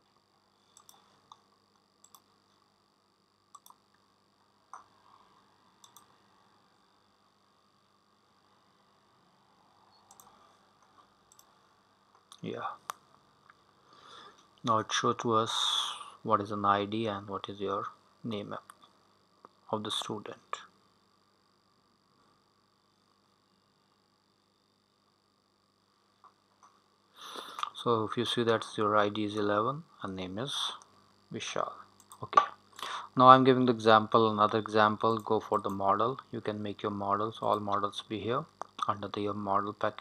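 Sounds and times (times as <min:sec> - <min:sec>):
faint steady hum: 0:00.0 - 0:40.0
short clicks: 0:03.5 - 0:03.8, 0:10.0 - 0:10.3.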